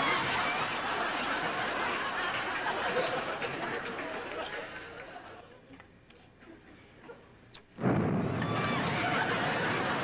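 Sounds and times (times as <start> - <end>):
audience laughing: 0.1 - 5.6, 8.8 - 10.0.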